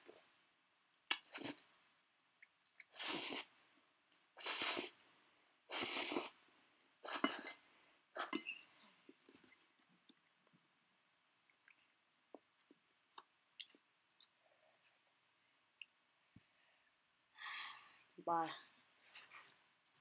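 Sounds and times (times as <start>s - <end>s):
person slurping noodles: 1.2s - 1.6s, 2.8s - 3.5s, 4.4s - 5.0s, 5.7s - 6.4s, 7.0s - 7.6s.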